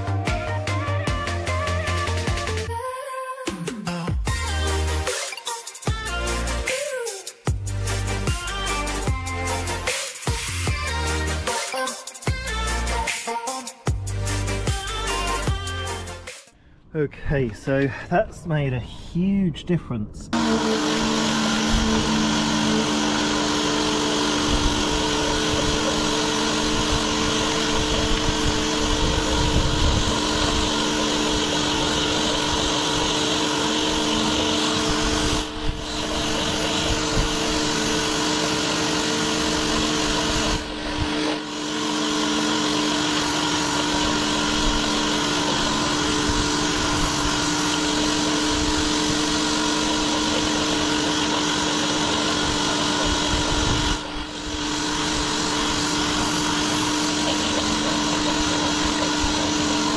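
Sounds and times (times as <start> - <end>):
pressure washer pump humming: 4.3 - 16.5, 20.3 - 59.9
water jet hissing on concrete: 20.4 - 59.9.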